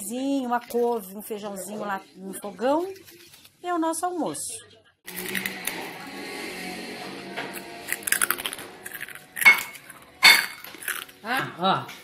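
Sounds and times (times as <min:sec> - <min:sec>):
spoon clinking on a plate: 0:09.4 - 0:10.7.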